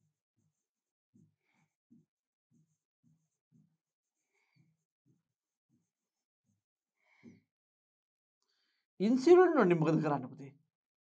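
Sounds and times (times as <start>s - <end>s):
pen rubbing and squeaking on board: 0.0s - 7.3s.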